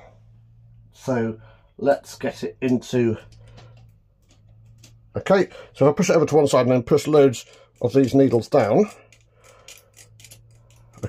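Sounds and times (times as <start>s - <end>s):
metallic clicks of knitting needles: 7.4s - 11.0s.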